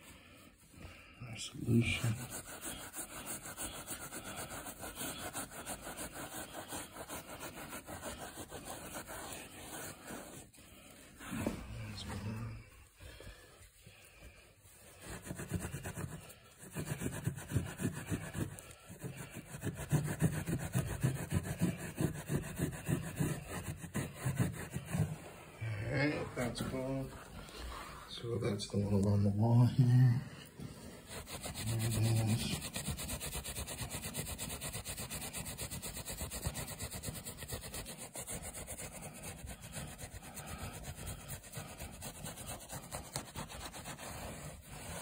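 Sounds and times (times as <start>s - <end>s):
hand brush scrubbing carpet: 0.0s - 45.0s.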